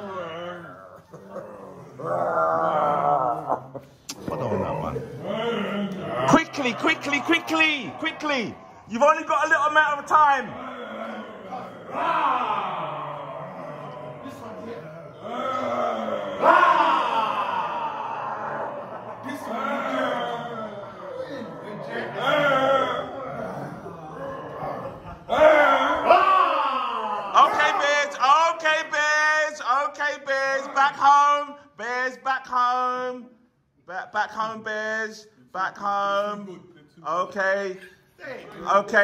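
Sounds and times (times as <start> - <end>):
long falling vocal cry: 0.0 - 9.0, 10.5 - 27.8
men's voices in play: 4.1 - 10.9, 27.3 - 39.0.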